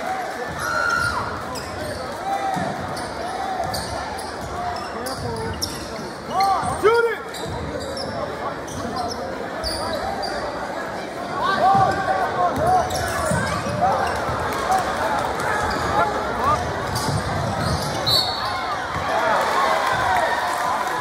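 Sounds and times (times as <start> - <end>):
crowd voices murmuring: 0.0 - 21.0
sneakers squeaking: 0.5 - 19.1.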